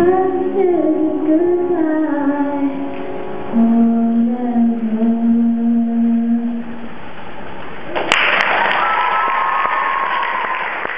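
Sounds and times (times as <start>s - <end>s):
audience applause: 8.0s - 10.9s
audience cheering: 8.0s - 10.9s.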